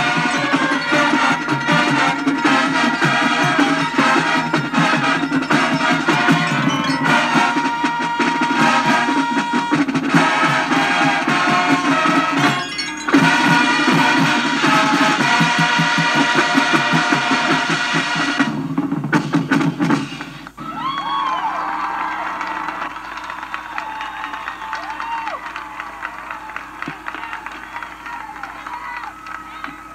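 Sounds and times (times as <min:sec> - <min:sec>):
audience applauding and cheering: 0:00.0 - 0:17.5, 0:20.5 - 0:29.9
marching band music from speaker: 0:00.0 - 0:20.6, 0:22.4 - 0:29.9.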